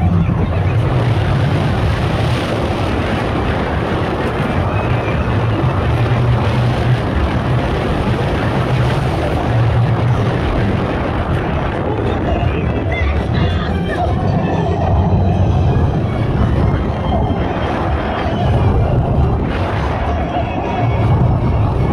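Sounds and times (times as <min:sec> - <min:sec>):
roller coaster wheels rumbling: 0:00.0 - 0:21.9
wind rushing on microphone: 0:00.0 - 0:21.9.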